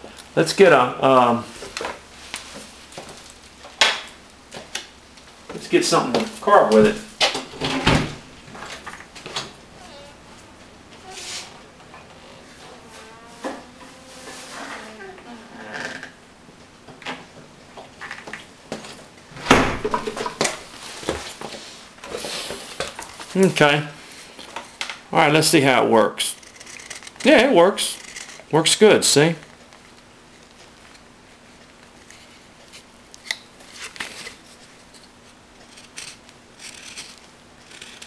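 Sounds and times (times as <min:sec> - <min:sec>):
rustling: 0:07.8 - 0:16.0.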